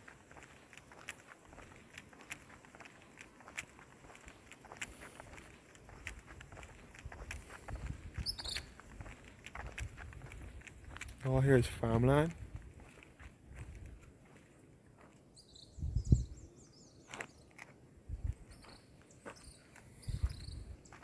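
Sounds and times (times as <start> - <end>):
footsteps on asphalt: 0.0 - 15.6, 16.8 - 21.0
high chirps: 8.2 - 8.8.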